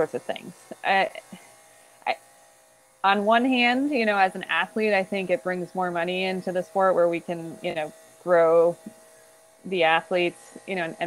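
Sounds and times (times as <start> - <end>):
woman speaking over a call: 0.0 - 1.4, 3.0 - 8.9, 9.7 - 11.0
faint electrical buzz: 0.0 - 11.0.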